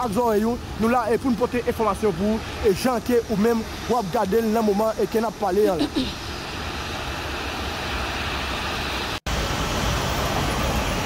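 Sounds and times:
traffic rumble with hiss: 0.0 - 11.0.

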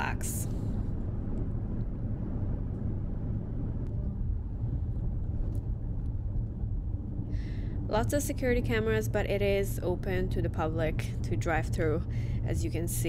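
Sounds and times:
car driving rumble from inside: 1.0 - 13.0.

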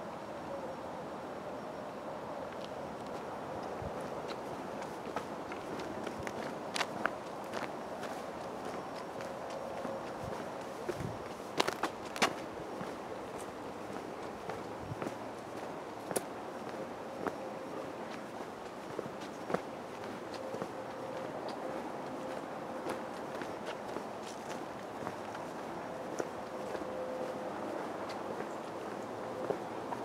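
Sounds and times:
outdoor background hiss: 0.0 - 30.0
footsteps on a path: 2.5 - 30.0.

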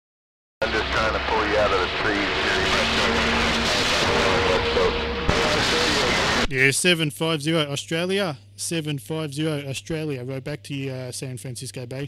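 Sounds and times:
garbled voice over radio: 0.6 - 6.7
radio static hiss: 0.6 - 6.8
radio whistles: 0.7 - 6.5.

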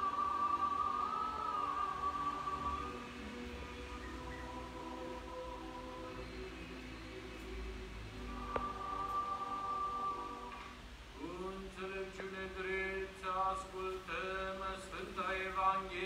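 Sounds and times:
voices chanting held notes: 0.0 - 16.0.

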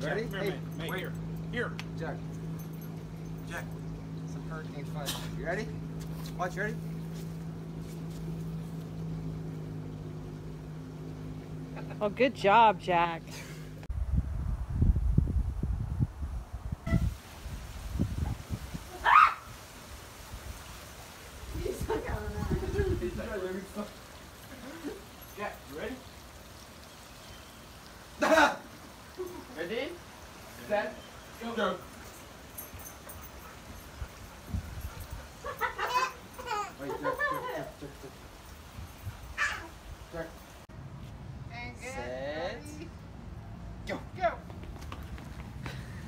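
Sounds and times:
wind buffeting microphone: 13.9 - 19.0, 21.4 - 23.4, 33.8 - 35.6.

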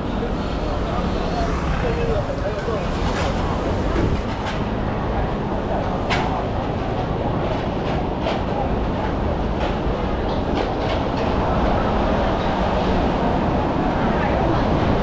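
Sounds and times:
low street rumble: 0.0 - 15.0.

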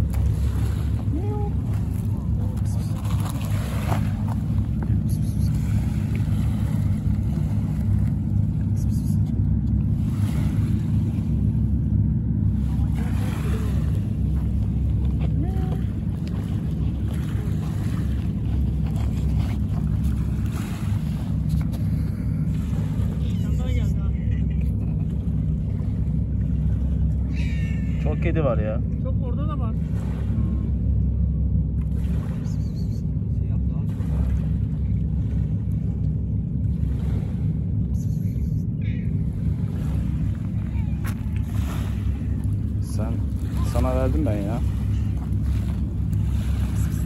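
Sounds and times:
low engine drone: 0.0 - 47.0.

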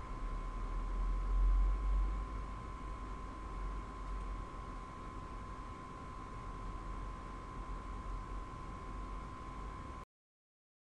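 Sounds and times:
thin high whine: 0.0 - 10.0.

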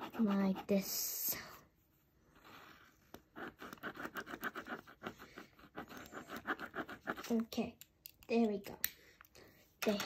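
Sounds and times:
pen scribbling on paper: 0.0 - 1.1, 2.4 - 7.5.

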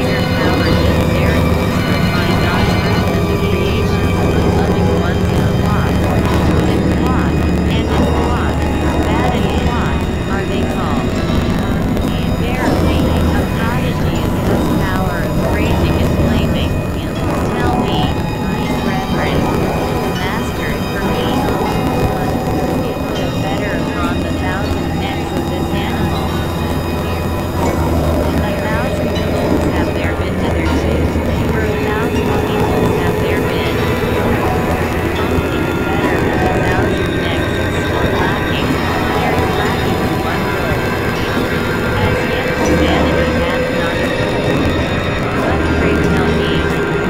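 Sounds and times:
low synthesizer drone: 0.0 - 47.0.

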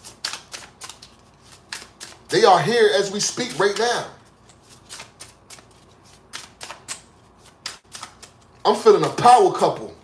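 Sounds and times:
cards being shuffled: 0.0 - 9.9.

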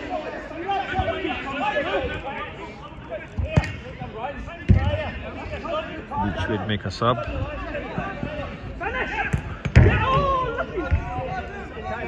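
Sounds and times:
players' voices: 0.0 - 12.0.

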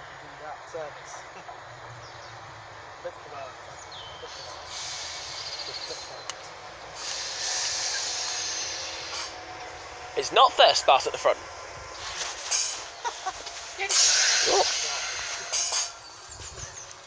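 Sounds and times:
train wheels rumbling on rail: 0.0 - 17.0
train hiss: 2.8 - 17.0.

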